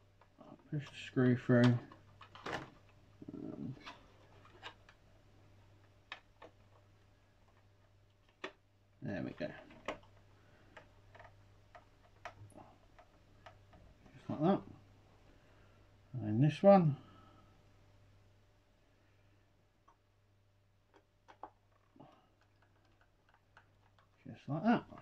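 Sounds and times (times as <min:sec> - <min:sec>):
plastic parts being handled: 0:00.0 - 0:14.2, 0:20.8 - 0:24.2
mumbled voice: 0:03.2 - 0:03.9.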